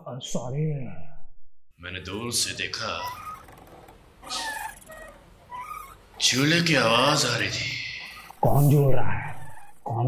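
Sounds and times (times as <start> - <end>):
cat meowing: 2.8 - 6.3, 9.2 - 9.9.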